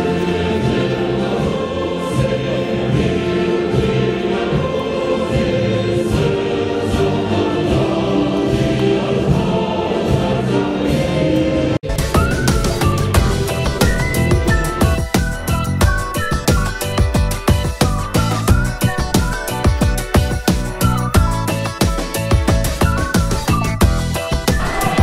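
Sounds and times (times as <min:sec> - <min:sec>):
choir singing an anthem: 0:00.0 - 0:16.3, 0:24.3 - 0:25.0
musical accompaniment: 0:00.0 - 0:25.0.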